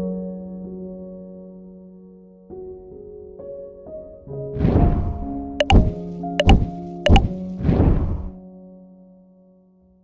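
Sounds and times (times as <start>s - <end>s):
sharp mouse clicks: 5.6s - 7.3s.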